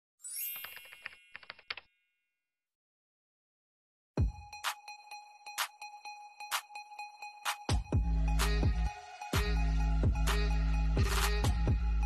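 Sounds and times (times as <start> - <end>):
bright sparkling chime: 0.2 - 0.9.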